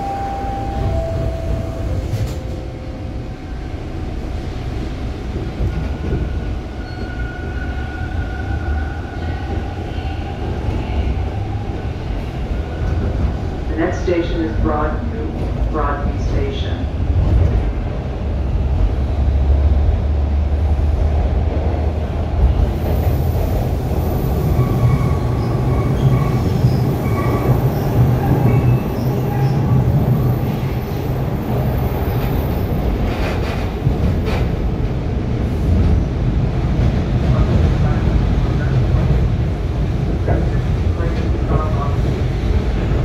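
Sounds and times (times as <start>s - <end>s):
train wheels rumbling on track: 0.0s - 43.0s.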